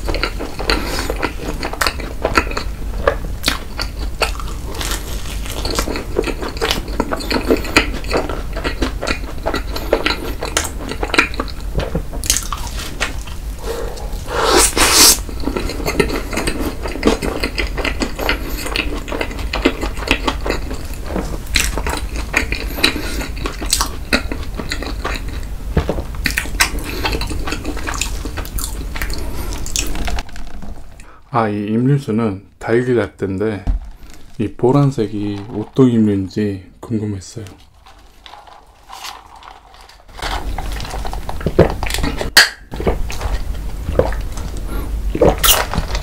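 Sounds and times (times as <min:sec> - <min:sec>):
chewing and smacking: 0:00.0 - 0:14.2, 0:15.2 - 0:31.1, 0:37.8 - 0:46.0
crunchy bite: 0:45.1 - 0:46.0.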